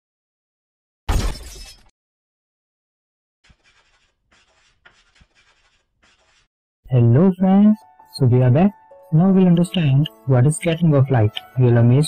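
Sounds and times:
glass shattering: 1.1 - 1.9.

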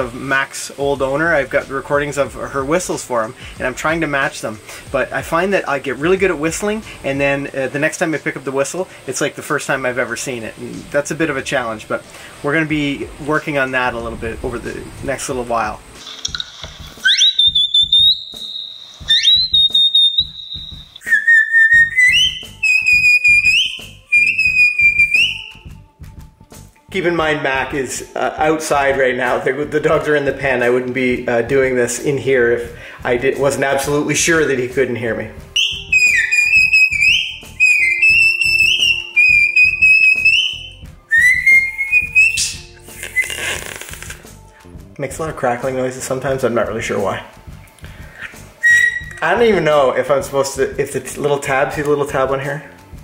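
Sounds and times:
breathy rush of air: 12.0 - 12.5
high herding whistles: 17.0 - 25.6, 35.6 - 43.5, 48.6 - 49.3.

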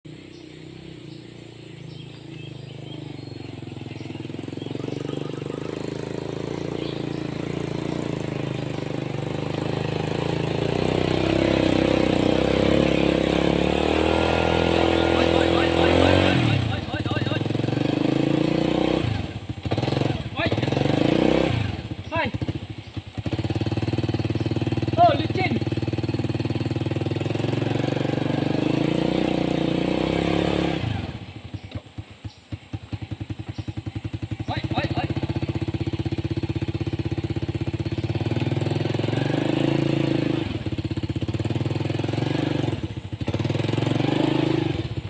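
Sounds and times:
motorcycle engine straining uphill: 0.0 - 45.0.

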